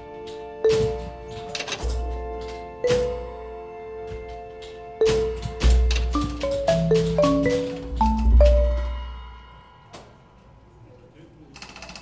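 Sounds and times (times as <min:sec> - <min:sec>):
rattle of small clicks: 0:11.6 - 0:12.0.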